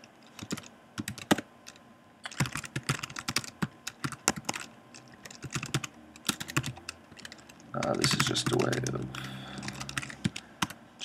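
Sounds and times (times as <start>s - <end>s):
computer keyboard typing: 0.0s - 10.8s.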